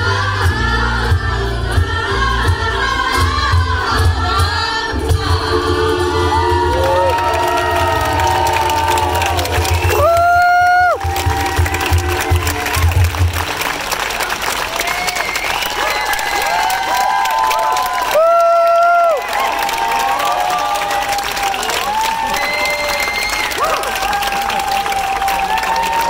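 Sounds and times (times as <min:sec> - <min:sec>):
ukulele choir singing: 0:00.0 - 0:08.8
audience cheering and applauding: 0:06.2 - 0:26.0
loud whistle-like tones: 0:15.1 - 0:16.5, 0:22.3 - 0:23.6.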